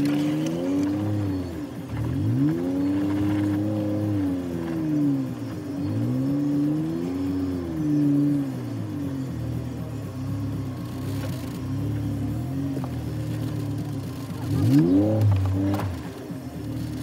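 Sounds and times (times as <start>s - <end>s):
off-road vehicle engine under load: 0.0s - 17.0s.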